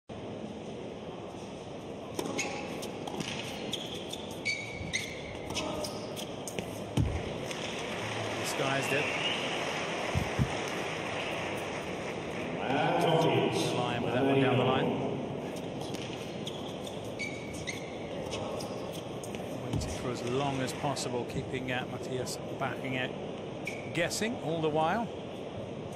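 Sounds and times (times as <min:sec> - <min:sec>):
arena noise: 0:00.1 - 0:25.9
racket hitting tennis ball: 0:02.1 - 0:04.1
tennis ball bouncing: 0:02.1 - 0:07.9
shoe squeaks: 0:02.2 - 0:06.9, 0:15.5 - 0:19.5, 0:23.6 - 0:24.0.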